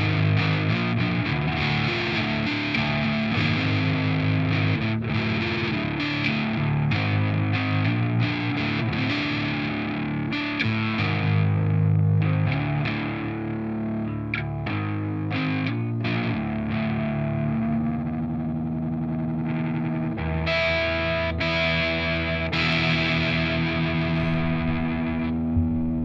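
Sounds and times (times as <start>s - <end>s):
distorted electric guitar riffs: 0.0s - 26.0s.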